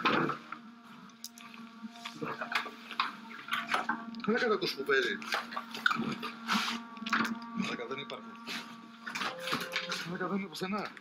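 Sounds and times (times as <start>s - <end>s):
steady low hum: 0.0s - 11.0s
distorted radio sound: 1.8s - 11.0s
speech: 4.3s - 5.2s, 7.6s - 8.3s, 10.0s - 11.0s.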